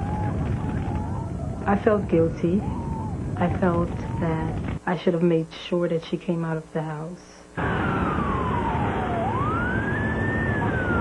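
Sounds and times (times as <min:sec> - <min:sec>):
fire engine siren wailing: 0:00.0 - 0:04.6, 0:07.6 - 0:11.0
steady rumble: 0:00.0 - 0:05.2.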